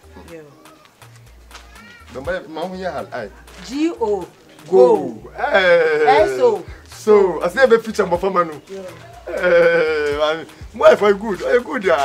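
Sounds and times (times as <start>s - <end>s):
quiet background music: 0.0s - 12.0s
low stepping bass line: 1.1s - 8.3s.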